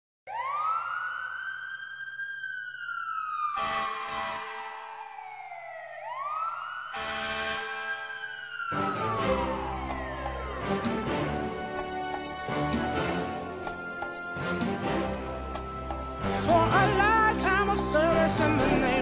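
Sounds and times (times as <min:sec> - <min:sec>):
siren wailing: 0:00.3 - 0:19.0
music: 0:08.8 - 0:19.0.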